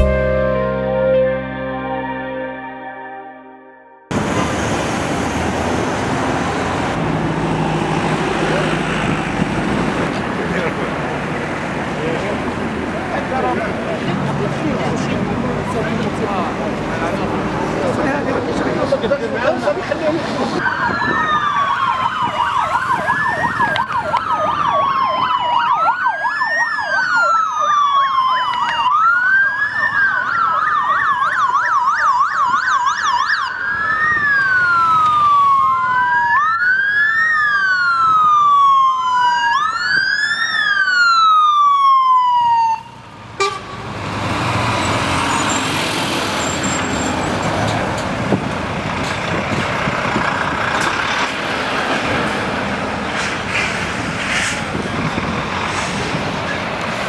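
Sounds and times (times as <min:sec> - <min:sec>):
lorries passing: 0:04.1 - 0:30.9, 0:33.1 - 0:57.0
sirens wailing: 0:20.4 - 0:54.0
siren yelp: 0:20.6 - 0:43.6.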